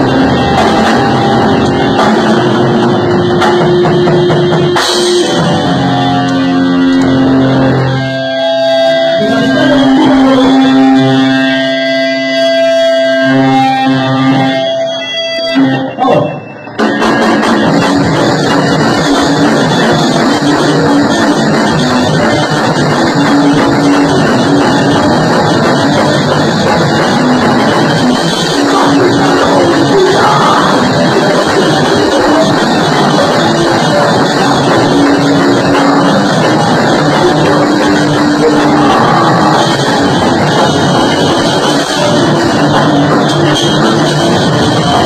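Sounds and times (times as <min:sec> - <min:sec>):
electric guitar ringing notes: 0:00.0 - 0:45.0
rock band playing: 0:00.0 - 0:45.0.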